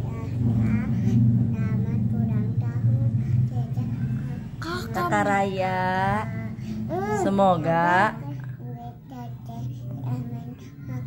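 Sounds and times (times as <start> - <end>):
indistinct voices talking: 0.0 - 9.6
low hum: 0.0 - 10.3.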